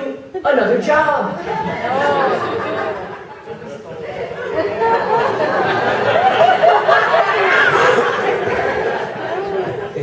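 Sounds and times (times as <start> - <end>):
indistinct chatter: 1.4 - 10.0.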